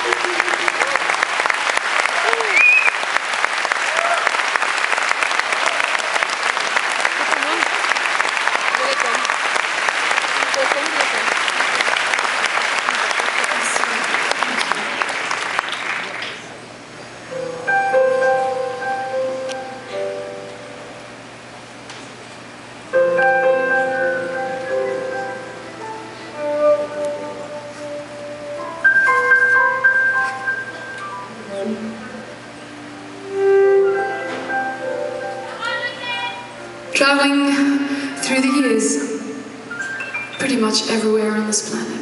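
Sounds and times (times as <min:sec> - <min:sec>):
audience whoops and cheers: 0:00.0 - 0:07.4, 0:08.6 - 0:09.4
audience applauding: 0:00.0 - 0:16.6
soft piano chords: 0:17.2 - 0:21.8, 0:22.7 - 0:42.0.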